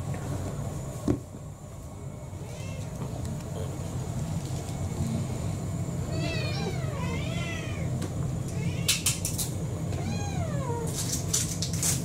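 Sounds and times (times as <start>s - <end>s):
steady low hum: 0.0s - 12.0s
cat meowing: 6.1s - 9.1s, 9.9s - 11.0s.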